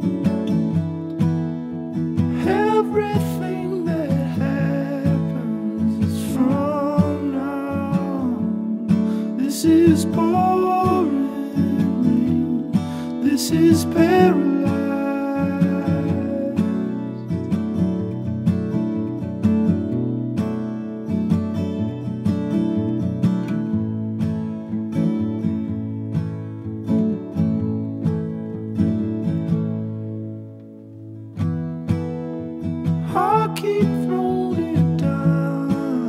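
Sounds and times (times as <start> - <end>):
acoustic guitar playing: 0.0 - 36.0.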